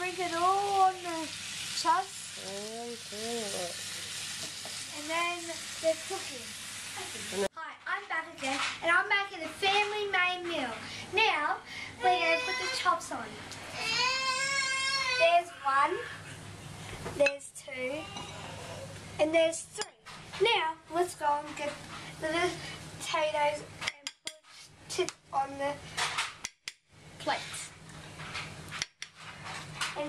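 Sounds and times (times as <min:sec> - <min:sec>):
girl speaking: 0:00.0 - 0:03.8, 0:04.9 - 0:16.1, 0:17.2 - 0:18.5, 0:19.2 - 0:23.7, 0:24.9 - 0:25.8, 0:27.2 - 0:27.8.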